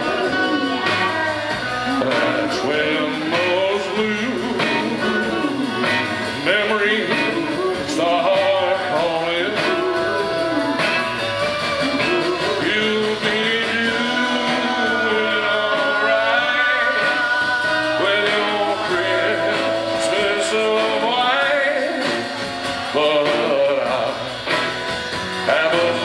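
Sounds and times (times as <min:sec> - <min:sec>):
man singing: 0:00.0 - 0:24.7, 0:25.3 - 0:26.0
acoustic guitar strumming: 0:00.0 - 0:26.0.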